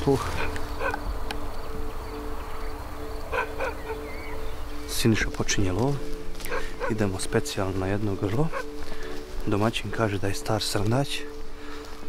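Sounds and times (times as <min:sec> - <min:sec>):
bird chirp: 0:00.0 - 0:09.1.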